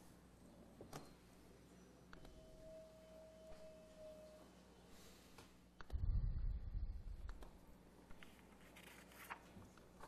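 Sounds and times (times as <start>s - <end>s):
faint steady tone: 0.0s - 7.9s.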